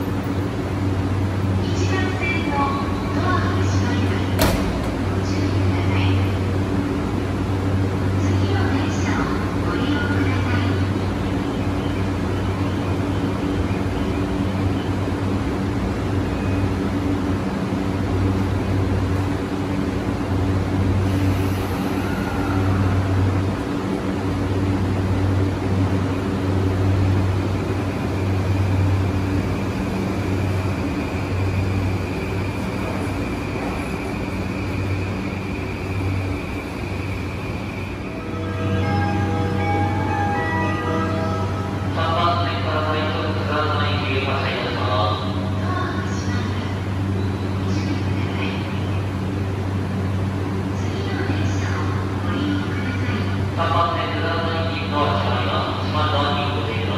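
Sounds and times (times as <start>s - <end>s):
train equipment low hum: 0.0s - 56.9s.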